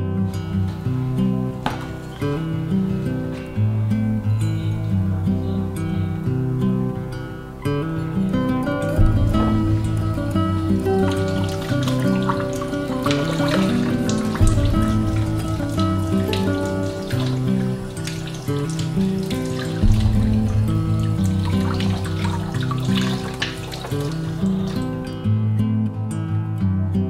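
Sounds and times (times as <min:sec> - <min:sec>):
strummed acoustic guitar music: 0:00.0 - 0:27.0
faucet water running and splashing: 0:00.7 - 0:03.4, 0:08.9 - 0:25.2.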